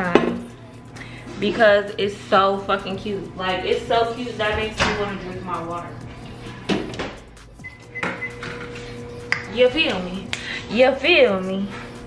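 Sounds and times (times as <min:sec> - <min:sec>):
keypad beep: 0:07.6 - 0:08.7.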